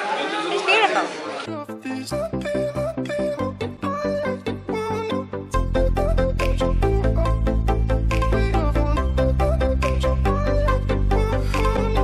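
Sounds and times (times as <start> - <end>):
music with a steady beat: 1.6 - 12.0.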